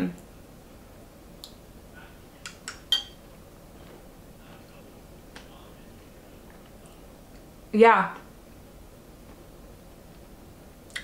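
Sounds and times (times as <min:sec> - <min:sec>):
metal spoon clinking bowl: 0:02.5 - 0:03.2.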